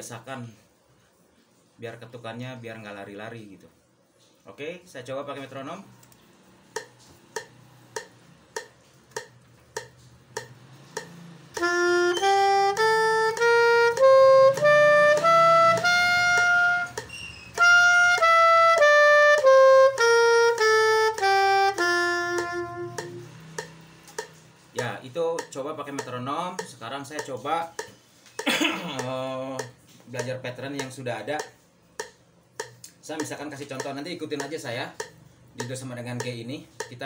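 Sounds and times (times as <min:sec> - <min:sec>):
metronome ticking: 0:06.7 - 0:37.0
soprano saxophone playing scale: 0:11.2 - 0:23.6.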